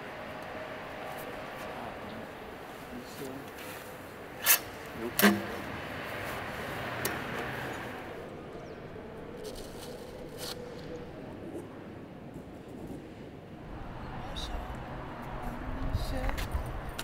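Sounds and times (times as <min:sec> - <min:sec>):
steady background noise: 0:00.0 - 0:17.0.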